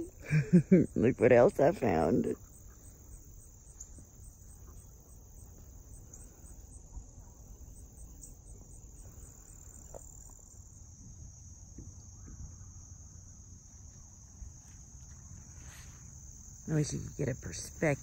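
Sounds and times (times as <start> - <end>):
crickets trilling: 0.0 - 18.0.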